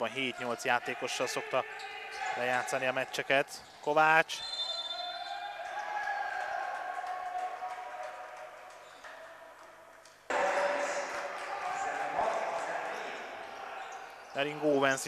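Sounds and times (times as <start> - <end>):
players' voices: 0.0 - 15.0.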